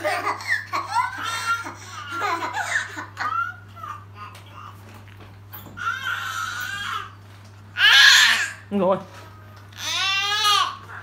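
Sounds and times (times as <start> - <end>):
toddler laughing and squealing: 0.0 - 4.3.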